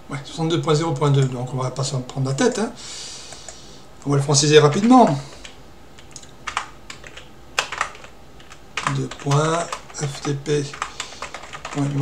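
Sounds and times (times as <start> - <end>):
keyboard typing: 4.6 - 12.0.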